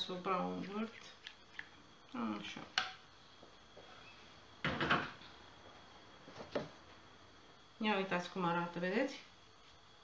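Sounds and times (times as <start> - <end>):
kitchenware clattering: 4.6 - 5.2.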